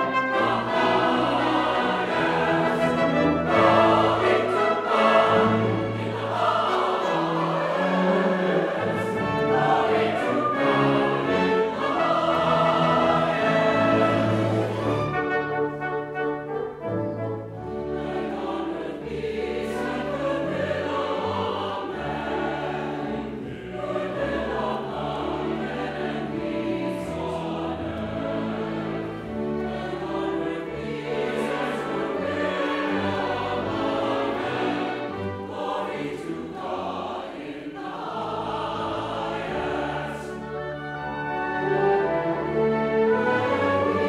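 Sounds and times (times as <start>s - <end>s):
church choir singing: 0.0s - 44.0s
strings and brass orchestra: 0.0s - 44.0s.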